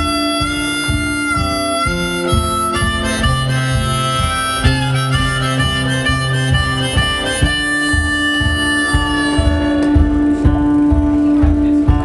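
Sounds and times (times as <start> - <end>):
harmonica solo: 0.0 - 10.8
strummed acoustic guitar: 0.0 - 12.0.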